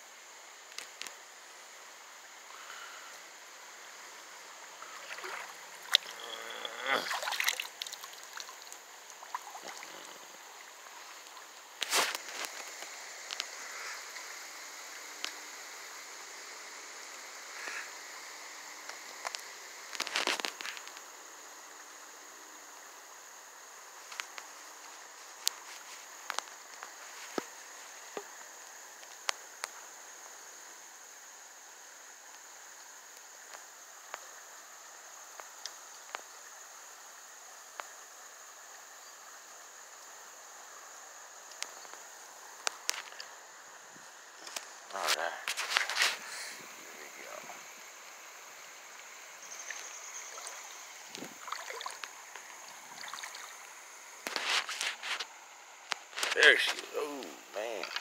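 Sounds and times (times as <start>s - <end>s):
high insect chorus: 0.0s - 58.0s
rustle: 0.0s - 58.0s.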